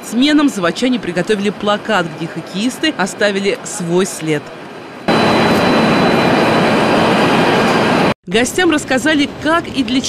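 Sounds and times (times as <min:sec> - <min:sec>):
faint high whine: 0:04.7 - 0:08.1.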